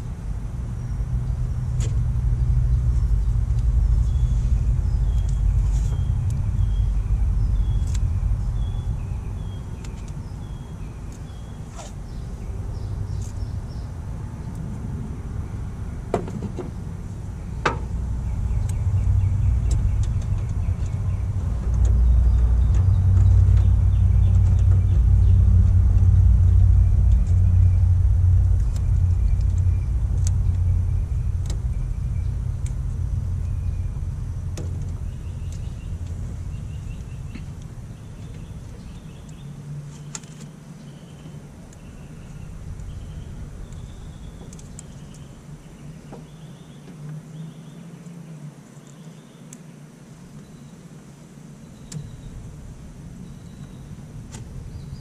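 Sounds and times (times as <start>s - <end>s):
motor vehicle rumble: 0.0s - 49.4s, 50.0s - 55.0s.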